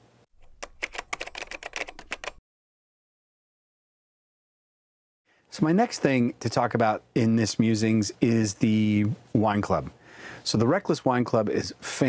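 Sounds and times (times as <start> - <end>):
keyboard typing clicks: 0.4 - 2.4.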